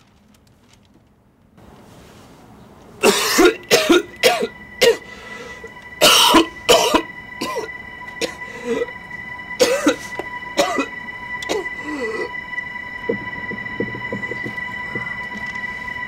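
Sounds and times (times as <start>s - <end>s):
person making cough-like bursts: 3.0s - 5.1s, 6.0s - 8.4s, 9.6s - 10.9s
faint high-pitched tone: 4.0s - 16.0s.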